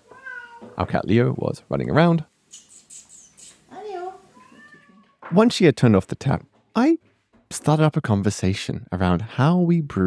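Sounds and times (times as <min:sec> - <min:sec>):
cat meowing: 0:00.0 - 0:00.8, 0:03.9 - 0:05.2.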